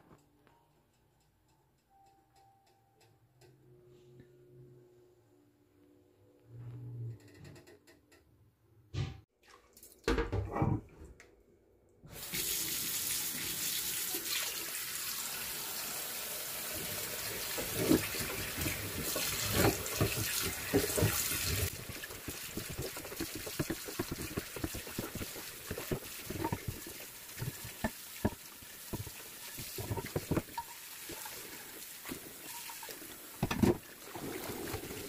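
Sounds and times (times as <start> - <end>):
tap water running onto pan: 12.1 - 35.0
dish brush scrubbing pan: 16.8 - 35.0.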